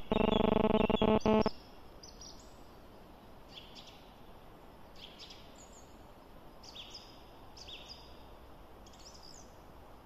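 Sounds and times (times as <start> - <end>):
loud buzzing pitched sound: 0.0 - 1.5
outdoor background hiss: 0.0 - 10.0.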